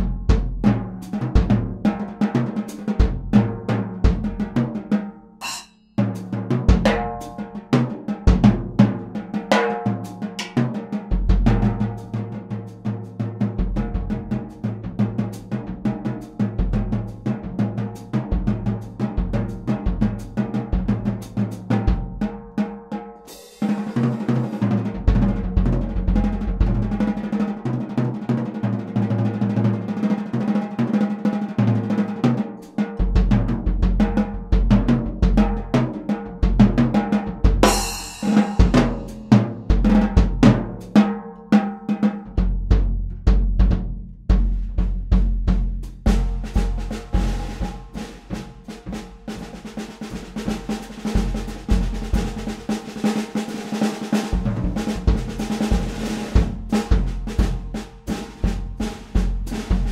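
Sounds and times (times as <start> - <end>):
bass drum: 0.0 - 2.0, 2.9 - 4.7, 5.4 - 9.2, 9.8 - 12.4, 13.3 - 22.3, 24.6 - 27.2, 33.0 - 41.0, 42.3 - 52.8, 54.3 - 59.9
drum kit groove: 0.0 - 28.4, 30.5 - 59.9
cymbal crash: 5.4 - 5.9, 37.6 - 39.3.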